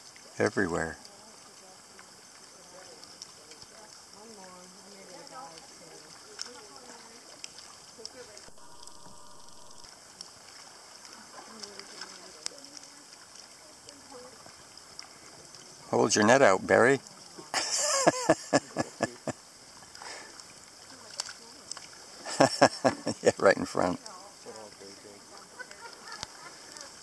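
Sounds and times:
small water splashes and drips: 0:00.0 - 0:09.0, 0:09.7 - 0:27.0.

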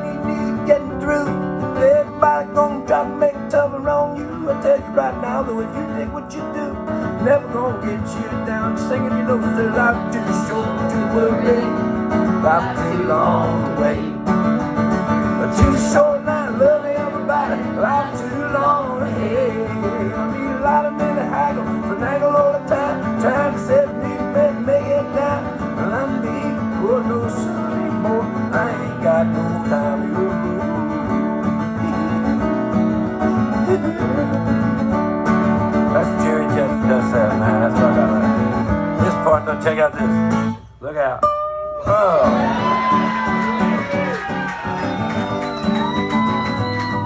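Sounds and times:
acoustic guitar strumming and picking: 0:00.0 - 0:47.0.

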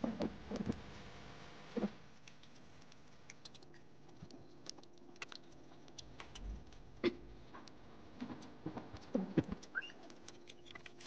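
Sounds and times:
wet chewing and lip-smacking: 0:03.3 - 0:06.5.

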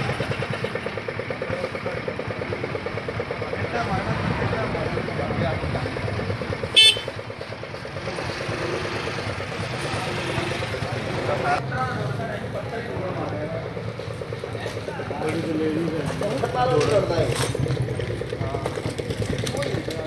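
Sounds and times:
engine idling: 0:00.0 - 0:20.0
vehicle horn honk: 0:06.7 - 0:07.2.

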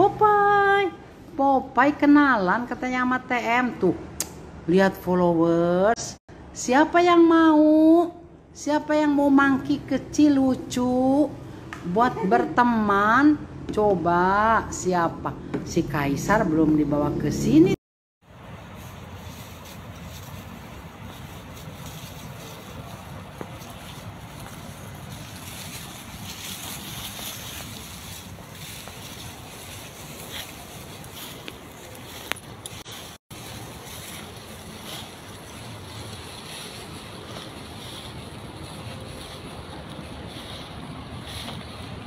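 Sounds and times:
tall grass rustling: 0:18.2 - 0:42.0.

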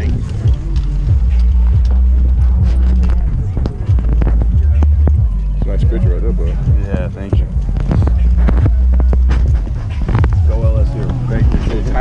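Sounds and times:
background voices: 0:00.0 - 0:12.0
wind rumble on microphone: 0:00.0 - 0:12.0.

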